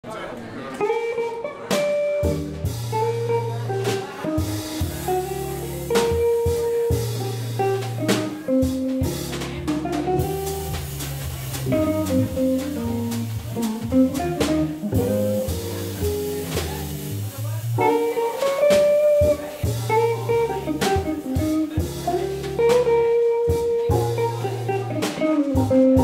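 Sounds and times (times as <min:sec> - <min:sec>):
drum kit with light cymbals: 0:00.8 - 0:26.0
electric guitar melody: 0:00.8 - 0:26.0
organ bass notes and chords: 0:02.2 - 0:26.0.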